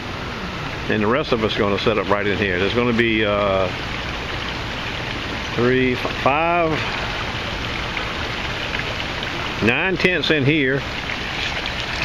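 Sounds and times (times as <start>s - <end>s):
fountain water rushing: 0.0s - 12.0s.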